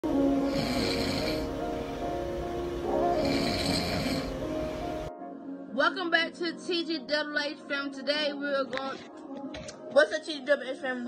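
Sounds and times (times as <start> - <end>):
background music: 0.0 - 11.0
man snoring: 0.4 - 1.6, 3.1 - 4.4.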